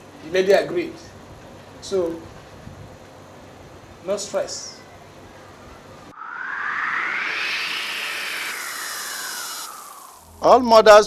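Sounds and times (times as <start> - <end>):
synthesized whoosh: 6.1 - 10.5.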